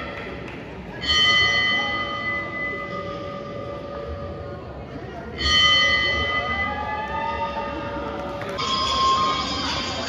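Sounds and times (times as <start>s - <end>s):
bell ringing: 5.4s - 10.0s.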